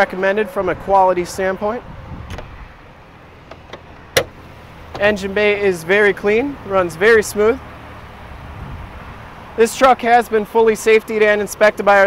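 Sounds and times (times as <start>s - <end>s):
low steady rumble: 0.0s - 10.5s
sharp latch click: 3.5s - 5.1s.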